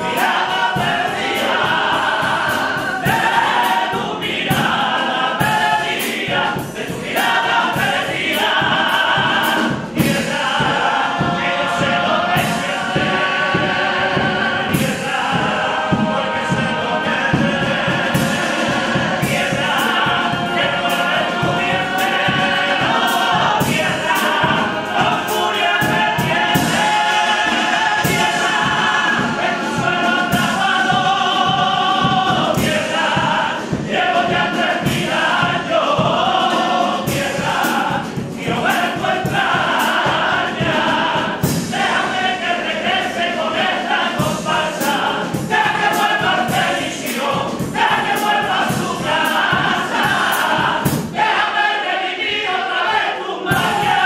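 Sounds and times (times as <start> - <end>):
male chorus singing: 0.0 - 54.0.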